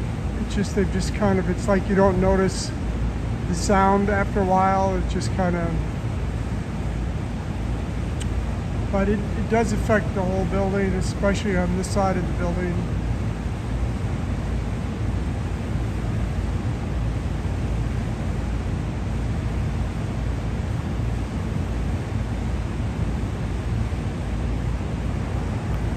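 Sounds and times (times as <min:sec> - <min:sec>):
city background rumble: 0:00.0 - 0:25.9.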